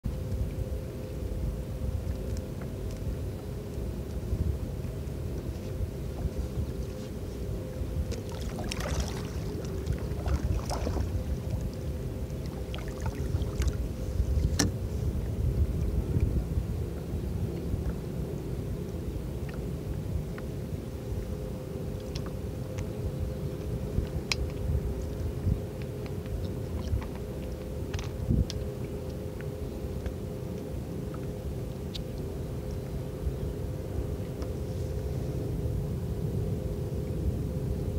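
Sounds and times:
faint steady hum: 0.0s - 37.9s
wind rumble on microphone: 0.0s - 37.9s
water lapping against hull: 1.9s - 35.5s
water splashing against kayak hull: 8.1s - 14.8s.

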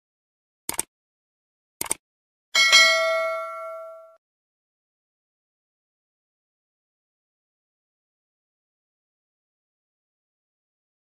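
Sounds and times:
notification bell ding: 2.6s - 4.2s.

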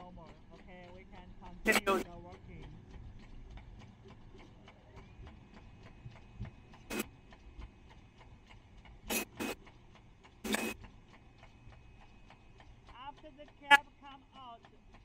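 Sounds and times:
fast machine ticking: 0.0s - 15.0s.

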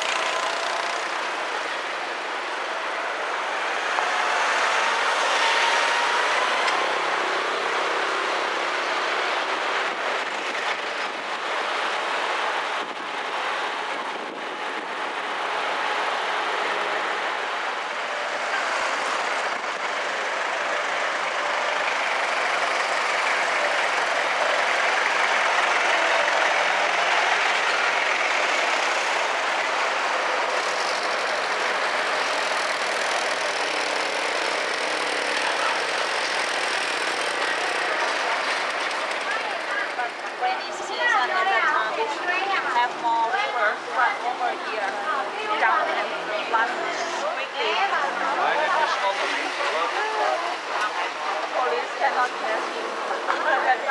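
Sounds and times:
street traffic noise: 0.0s - 53.9s.

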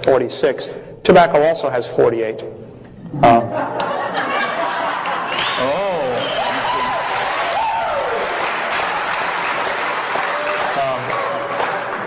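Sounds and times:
audience applauding: 5.0s - 12.0s.

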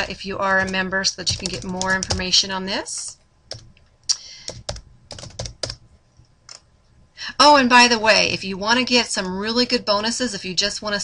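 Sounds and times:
keyboard typing: 0.0s - 3.8s, 4.4s - 6.6s.

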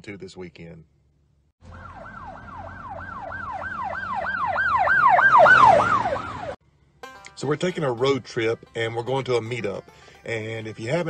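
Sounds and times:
police siren yelping: 1.7s - 6.6s.

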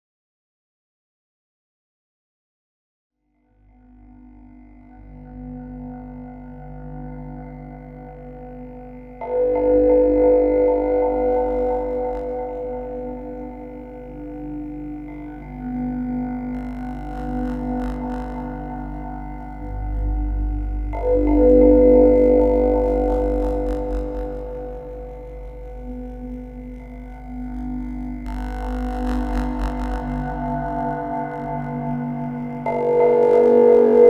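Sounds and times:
ambient drone music: 3.3s - 34.0s.

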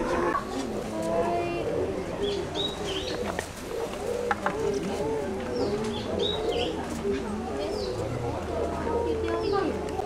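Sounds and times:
murmur of voices: 0.0s - 10.0s
birds chirping: 1.4s - 10.0s.

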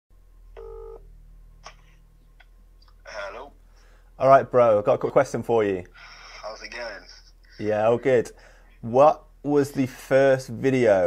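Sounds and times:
steady low hum: 0.2s - 11.0s
phone ringing tone: 0.6s - 1.1s.

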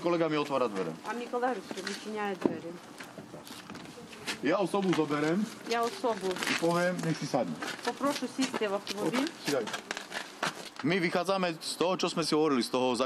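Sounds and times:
people talking: 0.0s - 2.8s, 3.9s - 9.8s.

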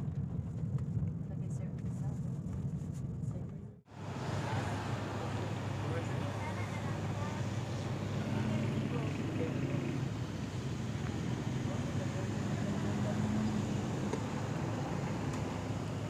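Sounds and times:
traffic rumble: 0.0s - 16.0s
faint indistinct voices: 4.0s - 14.8s.

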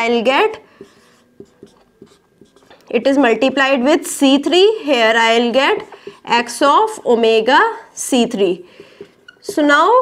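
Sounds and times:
marker pen on whiteboard: 0.0s - 7.4s, 8.0s - 10.0s.

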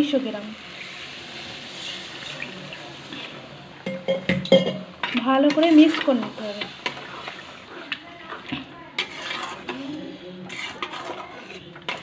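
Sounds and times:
water sizzling in hot pan: 0.0s - 12.0s
metal spoon scraping pan: 1.7s - 12.0s.

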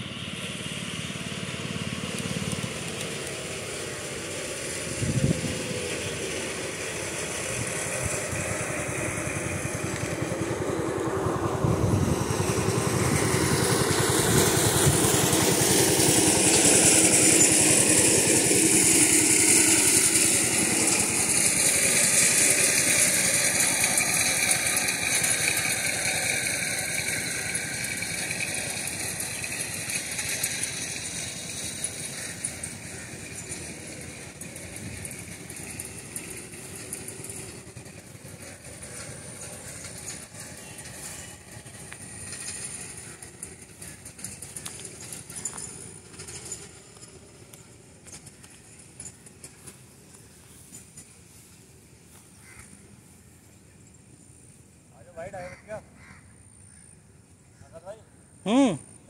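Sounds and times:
engine passing by: 0.0s - 53.5s.

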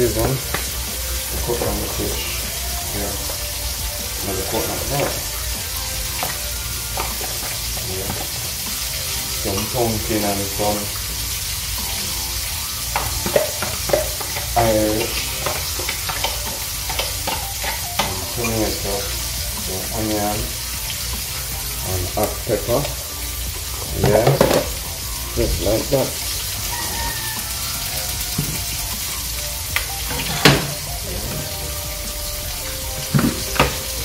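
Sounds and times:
food sizzling in hot oil: 0.0s - 34.0s.

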